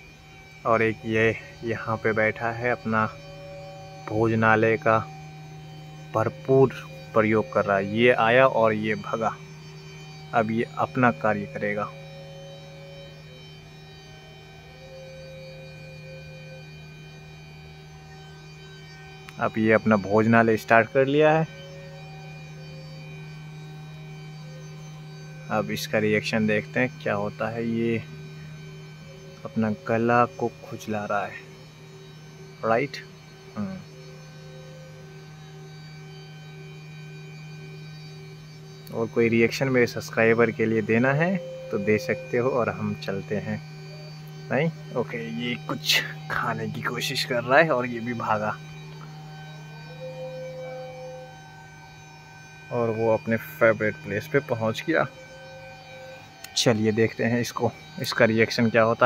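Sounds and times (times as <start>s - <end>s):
high steady tones: 0.0s - 59.0s
low electrical hum: 0.0s - 59.0s.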